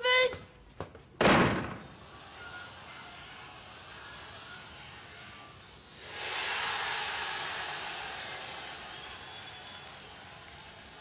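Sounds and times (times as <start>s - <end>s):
door slamming: 1.2s - 2.0s.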